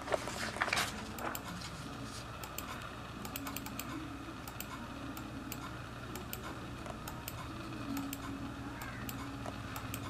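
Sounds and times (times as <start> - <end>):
faint steady hum: 0.0 - 10.0
computer mouse clicks: 2.4 - 10.0.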